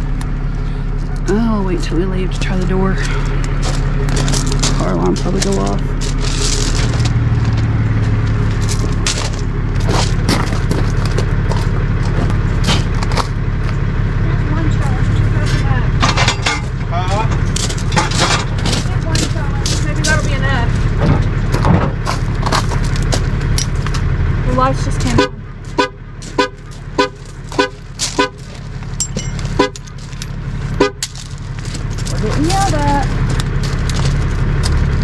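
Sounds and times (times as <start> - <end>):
tow truck engine idling: 0.0 - 35.0
metal clanks and knocks: 3.0 - 13.4, 16.0 - 24.2, 25.7 - 35.0.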